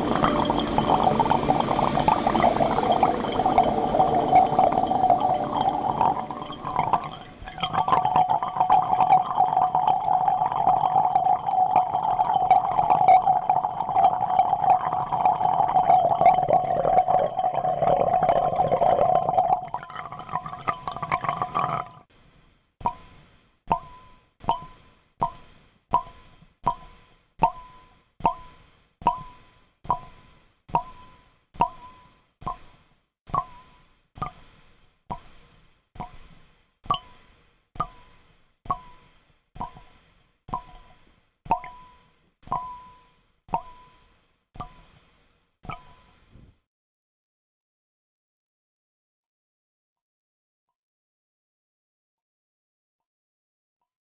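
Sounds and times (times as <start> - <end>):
crackling electronic drone: 0.0 - 17.4.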